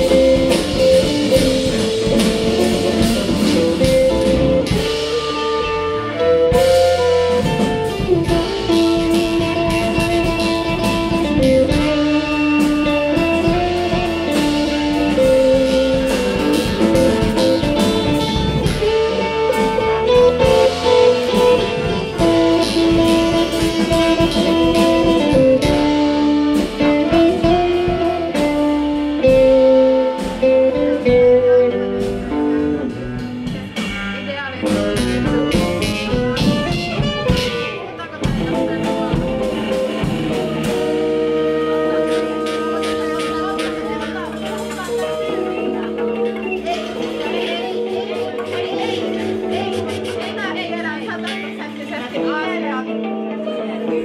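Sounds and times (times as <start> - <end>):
drum kit: 0.0 - 54.0
electric guitar: 0.0 - 54.0.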